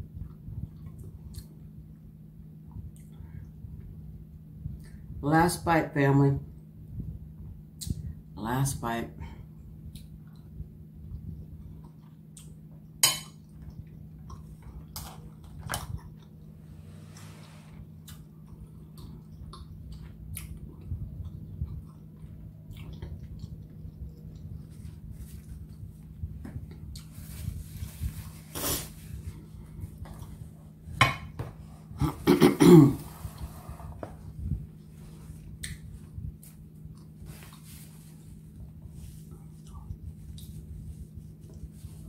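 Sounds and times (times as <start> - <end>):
steady low hum: 0.0 - 42.0
chewing with small clicks: 9.9 - 16.6, 18.0 - 25.8, 39.3 - 40.6
throat clearing: 32.0 - 33.1.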